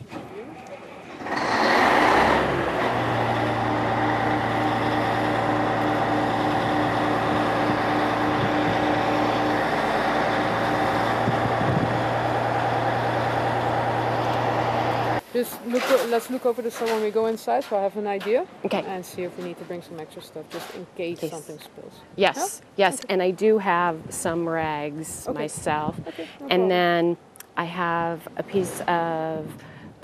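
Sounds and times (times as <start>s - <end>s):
excavator diesel engine running: 1.1s - 15.2s.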